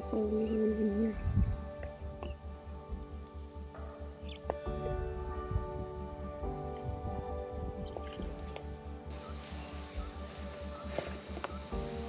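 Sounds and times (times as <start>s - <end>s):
insect chorus: 0.0s - 12.0s
soft background music: 0.0s - 12.0s.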